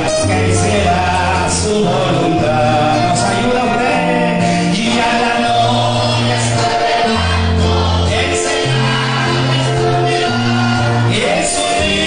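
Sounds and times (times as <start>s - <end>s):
acoustic guitars: 0.0s - 12.0s
held bass notes: 0.0s - 12.0s
man singing through a microphone: 0.0s - 12.0s.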